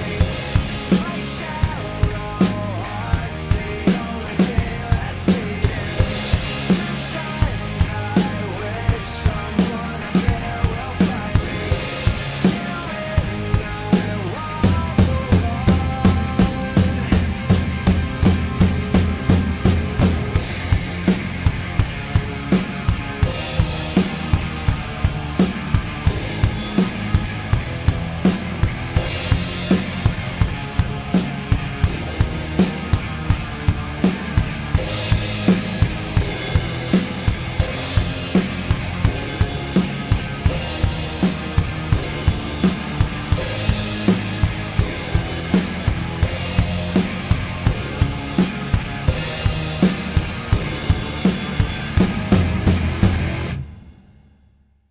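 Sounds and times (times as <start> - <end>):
guitar and bass backing track: 0.0 - 53.8
rock drum beat: 0.0 - 54.1.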